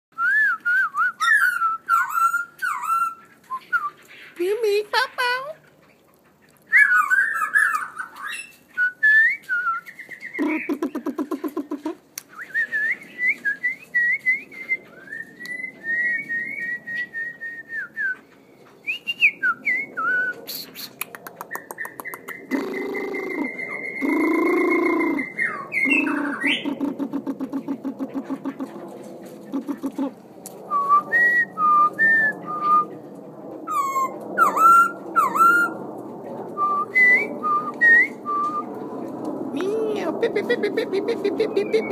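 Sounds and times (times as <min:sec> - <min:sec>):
birds whistling and calling: 0:00.2 - 0:04.5, 0:05.8 - 0:33.1, 0:33.7 - 0:35.9, 0:36.5 - 0:38.9, 0:41.4 - 0:41.9.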